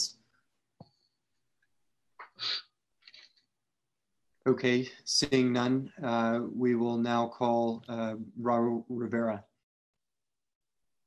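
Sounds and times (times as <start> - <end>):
person sneezing: 2.2 - 2.7.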